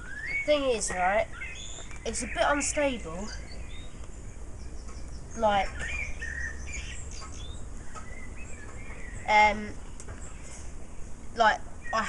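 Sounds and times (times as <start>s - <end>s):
small birds chirping: 0.0s - 12.0s
steady low rumble: 0.0s - 12.0s.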